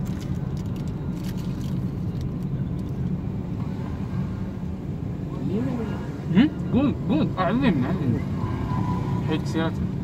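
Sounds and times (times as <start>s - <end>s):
car engine hum from inside: 0.0s - 10.0s.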